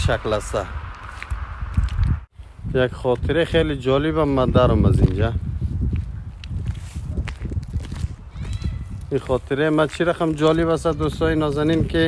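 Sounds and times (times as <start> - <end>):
low microphone rumble: 0.0 - 9.5
footsteps on slushy snow: 0.4 - 3.3, 4.2 - 12.0.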